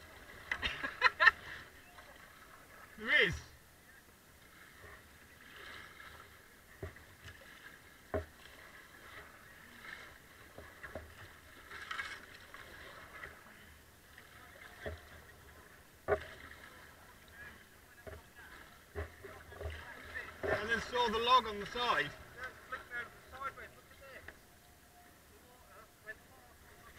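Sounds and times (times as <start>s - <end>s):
paddle splashing in water: 0.0s - 24.4s.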